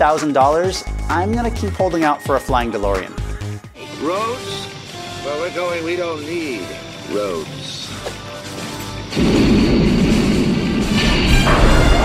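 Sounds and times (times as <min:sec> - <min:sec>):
orchestral music: 0:01.0 - 0:12.0
loud rushing roar: 0:09.1 - 0:12.0.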